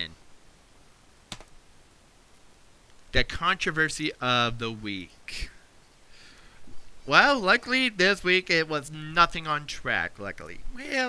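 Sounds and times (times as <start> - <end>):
sharp computer click: 1.3 - 1.5.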